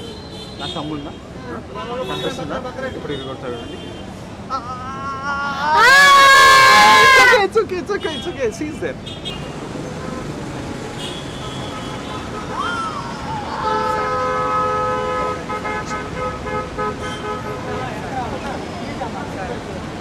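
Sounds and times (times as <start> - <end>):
street traffic noise: 0.0 - 20.0
multi-tone vehicle horn: 13.6 - 18.0.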